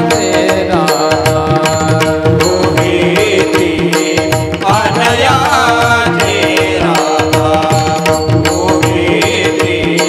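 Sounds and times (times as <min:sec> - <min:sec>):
harmonium holding steady notes: 0:00.0 - 0:10.0.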